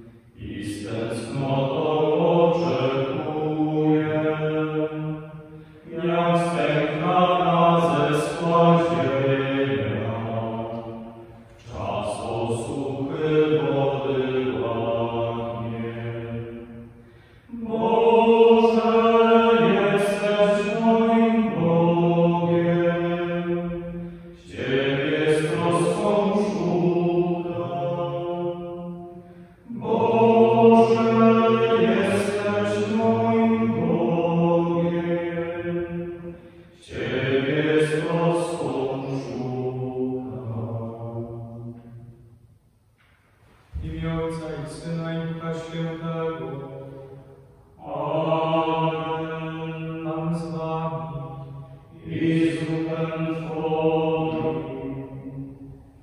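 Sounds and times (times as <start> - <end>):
men singing a hymn: 0.0 - 42.0, 43.5 - 55.8.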